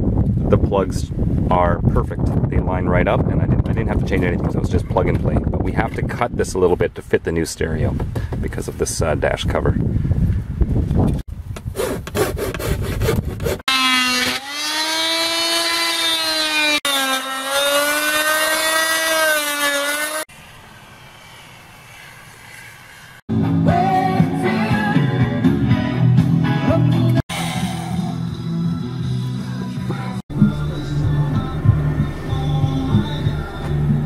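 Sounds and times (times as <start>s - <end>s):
rotary tool cutting wood: 11.6s - 23.2s
rock music with guitar: 23.3s - 27.2s.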